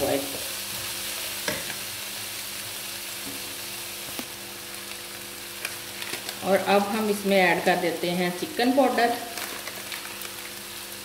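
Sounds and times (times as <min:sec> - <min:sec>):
food sizzling in a wok: 0:00.0 - 0:11.0.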